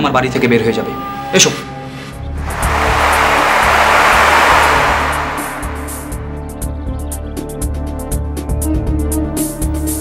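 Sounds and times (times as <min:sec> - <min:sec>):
whoosh of noise: 0:02.3 - 0:06.8.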